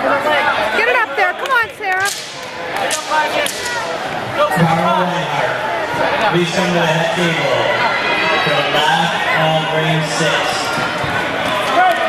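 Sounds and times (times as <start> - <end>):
people shouting: 0.7 - 6.4.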